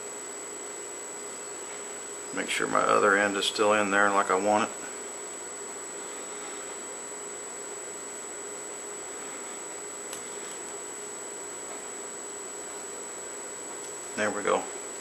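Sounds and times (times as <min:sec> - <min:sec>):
faint high whine: 0:00.0 - 0:15.0
low hum: 0:00.0 - 0:15.0
room tone hiss: 0:00.0 - 0:15.0.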